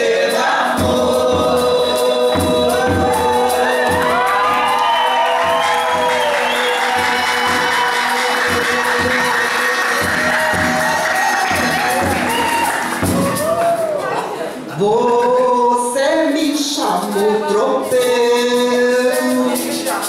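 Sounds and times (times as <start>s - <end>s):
voices singing held note: 0.0s - 13.6s
stringed guitar: 0.0s - 14.8s
frame drum beats: 0.4s - 14.2s
shaker: 18.0s - 20.0s.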